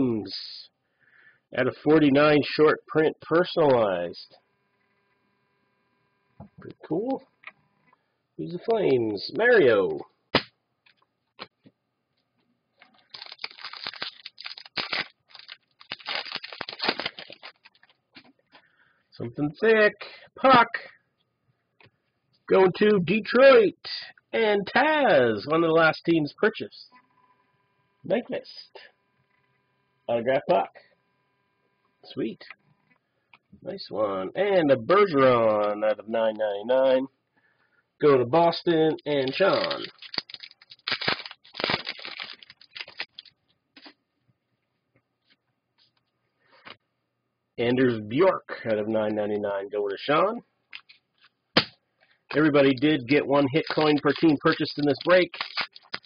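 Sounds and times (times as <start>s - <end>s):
plastic wrapping crinkling and tearing: 12.8s - 18.0s, 39.1s - 43.9s, 52.3s - 56.0s
trading cards shuffling: 12.8s - 18.4s, 39.0s - 44.0s, 52.3s - 56.0s.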